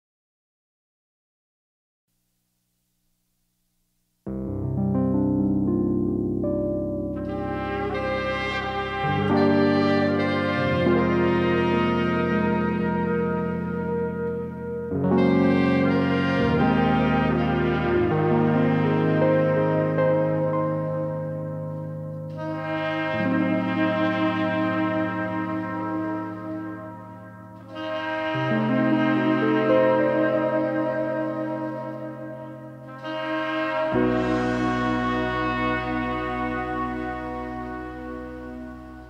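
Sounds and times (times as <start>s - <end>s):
held keyboard chords: 4.1s - 39.0s
french horn sustained notes: 4.3s - 39.0s.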